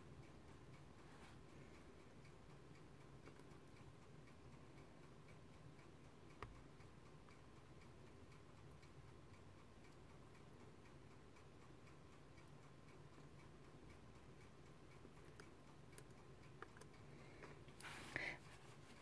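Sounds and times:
faint regular ticking: 0:00.0 - 0:19.0
faint steady hum: 0:00.0 - 0:19.0.

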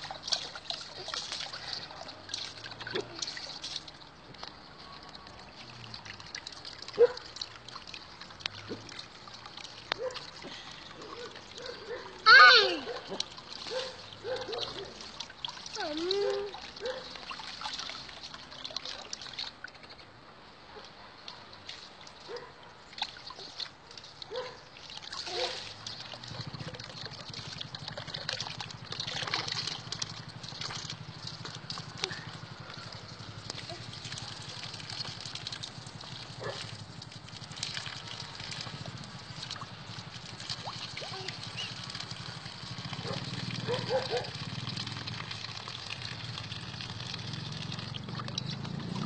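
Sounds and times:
water splashing in a tub: 0:00.0 - 0:49.0
toddler squealing laugh: 0:12.3 - 0:13.0.

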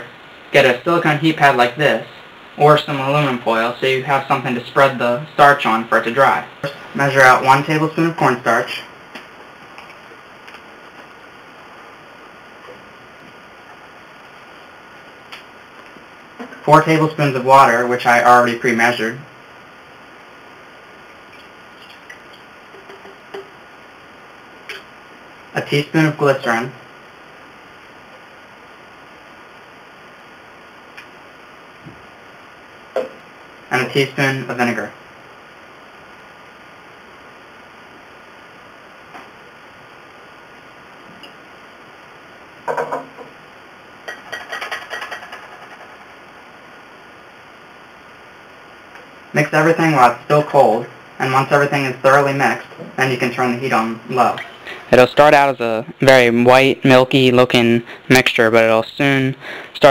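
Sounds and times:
background hiss: 0:00.0 - 0:59.9
bottle knocking on tabletop: 0:33.0 - 0:33.2, 0:42.7 - 0:43.3.

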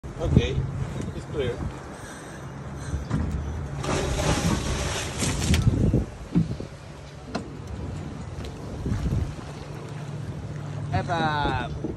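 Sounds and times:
boat engine idling hum: 0:00.0 - 0:11.9
splash into water: 0:03.8 - 0:05.8.

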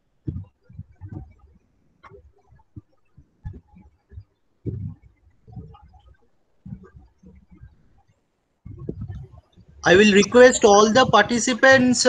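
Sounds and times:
low thumps on microphone: 0:00.2 - 0:01.4, 0:02.8 - 0:06.0, 0:06.6 - 0:07.8, 0:08.6 - 0:12.0.

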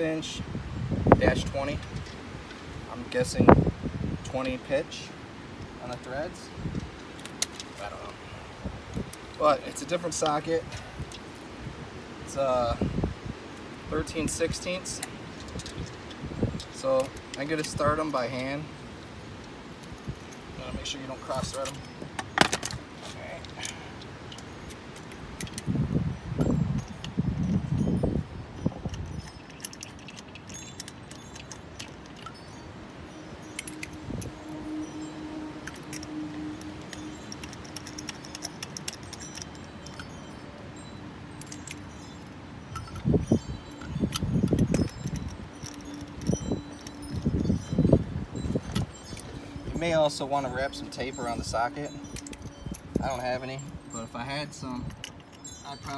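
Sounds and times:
metal lug nuts clinking: 0:05.8 - 0:08.2, 0:09.1 - 0:11.5, 0:13.6 - 0:55.9.

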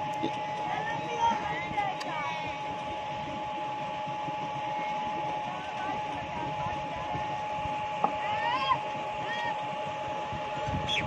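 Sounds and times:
motor drone with whine: 0:00.0 - 0:11.0.

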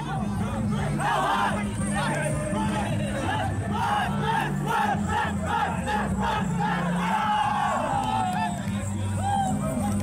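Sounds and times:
team chanting in unison: 0:00.4 - 0:01.8, 0:02.7 - 0:07.9.

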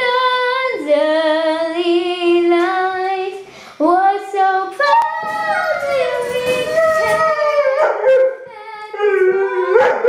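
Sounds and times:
girl singing held notes: 0:00.0 - 0:10.0.

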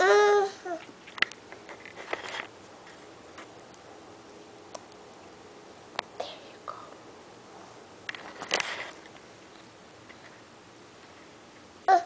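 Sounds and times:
soft whispery voice: 0:06.2 - 0:07.1.

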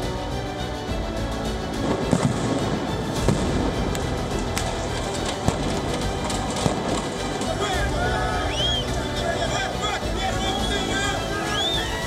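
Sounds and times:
dramatic background music: 0:00.0 - 0:12.0
sharp bangs: 0:01.9 - 0:08.0.

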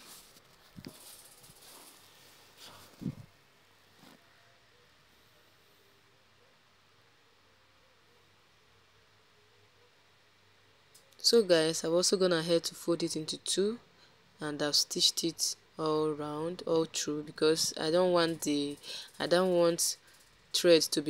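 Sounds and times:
cloth rustling: 0:00.0 - 0:03.3.

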